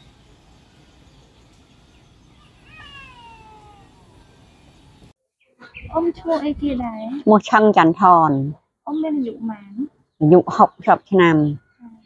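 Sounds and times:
faint outdoor background noise: 0:00.0 - 0:12.0
drawn-out animal call: 0:02.3 - 0:04.9
woman speaking: 0:05.9 - 0:12.0.

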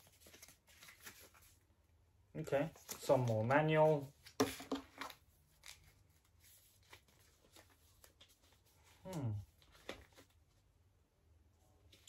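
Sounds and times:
paper rustling and crackling: 0:00.0 - 0:01.7, 0:02.6 - 0:10.7.

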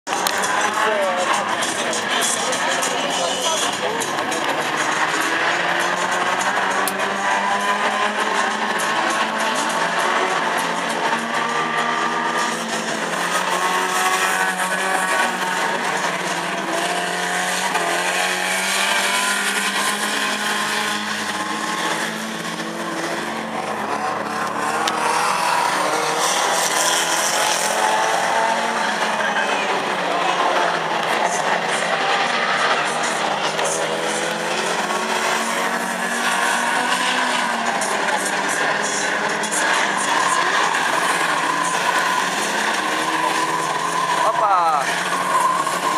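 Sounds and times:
racing car engines revving: 0:00.1 - 0:45.9.

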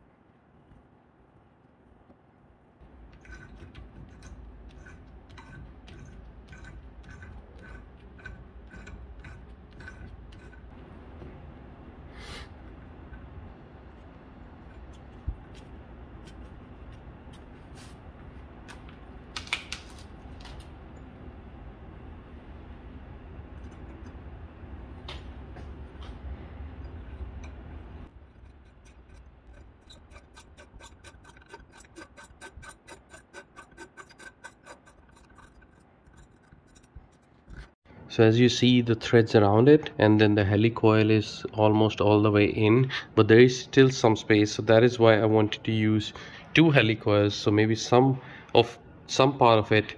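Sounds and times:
metallic scraping: 0:02.9 - 0:11.0, 0:26.2 - 0:37.8.

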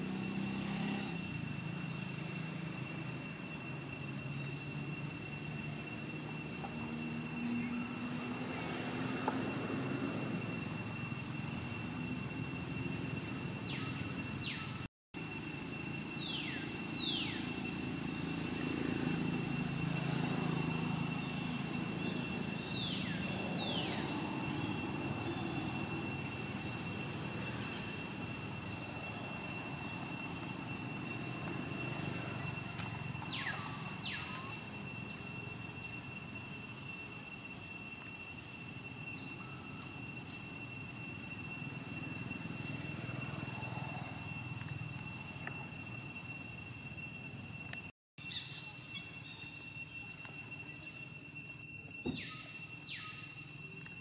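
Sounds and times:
high-pitched whine: 0:00.0 - 0:54.0.

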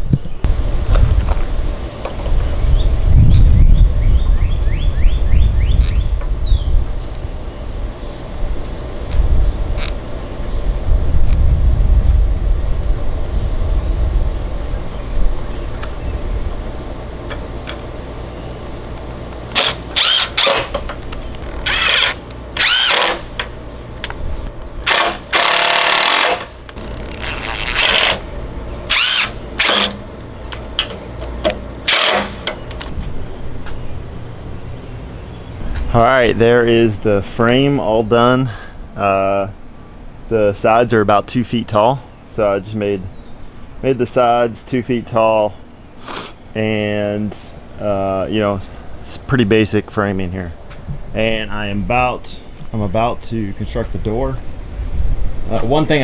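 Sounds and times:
loud low rumble: 0:08.3 - 0:17.2
cordless drill driving screws: 0:19.5 - 0:20.8, 0:21.4 - 0:23.3, 0:24.8 - 0:28.2, 0:28.9 - 0:30.0, 0:31.9 - 0:32.5.

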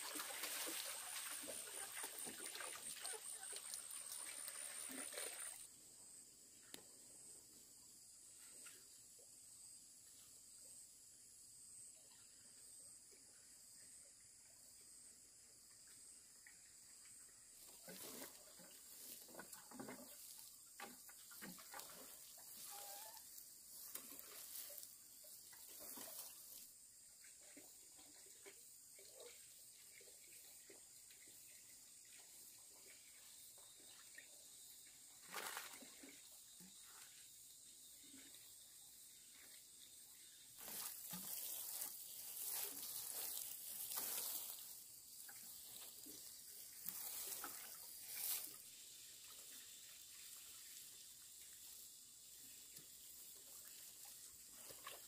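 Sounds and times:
water sprinkling onto soil: 0:00.0 - 0:05.6, 0:17.6 - 0:26.7, 0:40.5 - 0:55.0.

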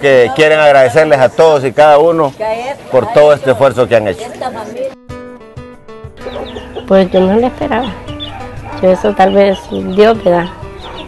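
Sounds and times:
hens clucking: 0:06.2 - 0:11.0.

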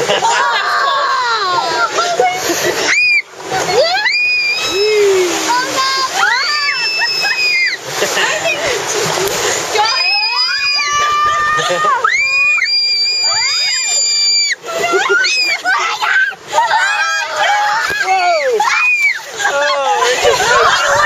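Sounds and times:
whitewater rushing and splashing: 0:00.0 - 0:21.0
people screaming: 0:00.1 - 0:07.9, 0:09.8 - 0:21.0.

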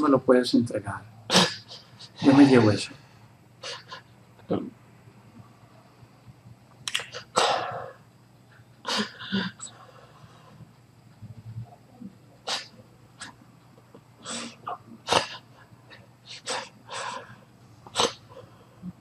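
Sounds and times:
low steady hum: 0:00.0 - 0:19.0
man breathing sharply and sniffing: 0:15.3 - 0:18.9.

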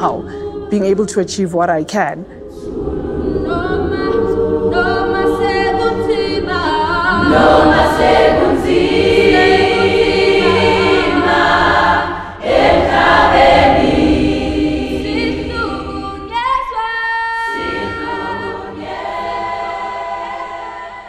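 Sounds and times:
choir singing held chords: 0:00.0 - 0:01.4, 0:02.2 - 0:21.0.

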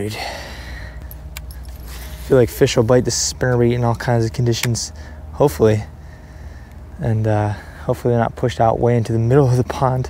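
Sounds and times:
fishing gear rustle: 0:01.0 - 0:02.8.

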